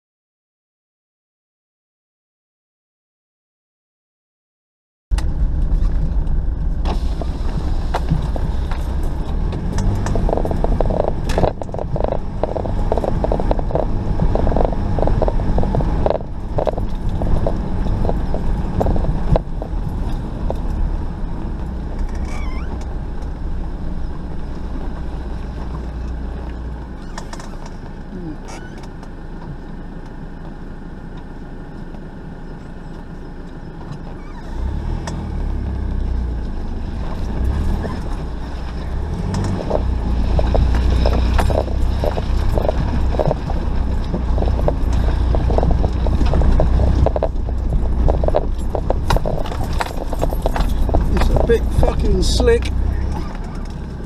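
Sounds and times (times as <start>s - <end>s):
clattering knocks and rattles: 5.1s - 28.0s, 36.9s - 54.0s
low engine drone: 5.1s - 54.0s.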